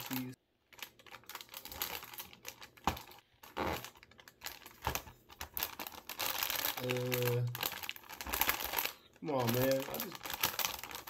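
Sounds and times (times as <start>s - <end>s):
plastic film rustling and crinkling: 0.0s - 11.0s.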